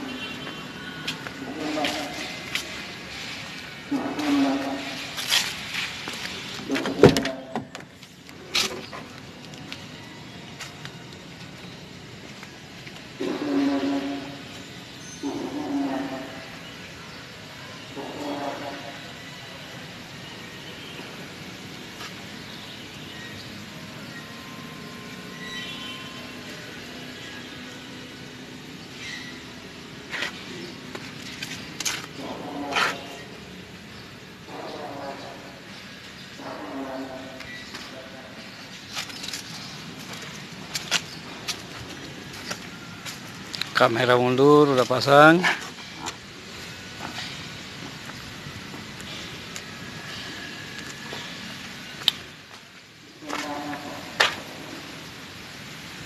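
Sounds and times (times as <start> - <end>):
indistinct voices: 1.0 - 3.3, 3.9 - 5.2.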